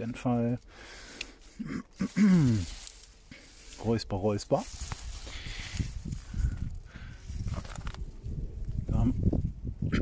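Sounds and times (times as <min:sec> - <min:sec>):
pea vines rustling: 0:00.0 - 0:09.8
man clearing his throat: 0:01.6 - 0:02.7.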